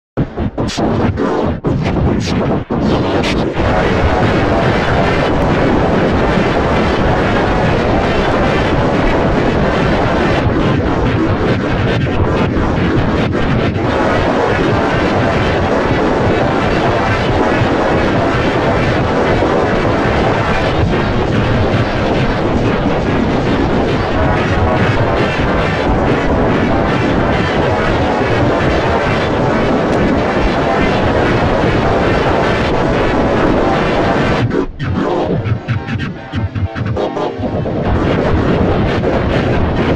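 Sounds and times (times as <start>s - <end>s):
distorted noisy remix: 0.0s - 39.9s.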